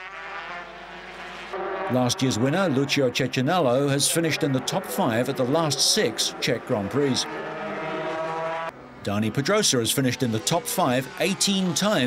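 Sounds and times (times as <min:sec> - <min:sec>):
motorcycle engine at high revs: 0:00.0 - 0:01.9, 0:04.4 - 0:08.7.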